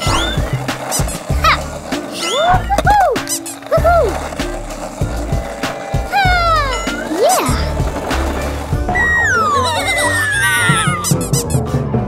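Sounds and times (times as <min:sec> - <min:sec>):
whistle-like glides: 0:00.0 - 0:01.1, 0:02.2 - 0:03.5, 0:08.8 - 0:11.6
cartoon skateboard rolling: 0:00.0 - 0:11.8.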